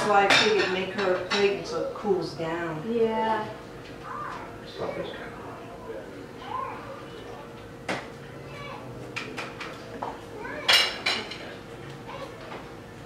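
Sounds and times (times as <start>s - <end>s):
utensil and dishes clinking: 0.0s - 2.0s, 9.1s - 12.7s.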